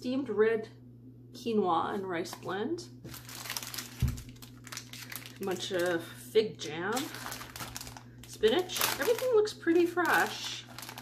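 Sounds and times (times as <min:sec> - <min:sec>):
plastic packaging crinkling: 0:03.0 - 0:11.0.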